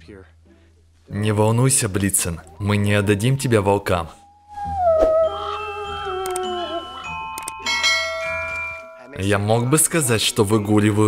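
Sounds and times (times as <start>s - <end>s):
wavering held note: 2.5s - 10.0s
chiming bell-like music: 5.2s - 11.0s.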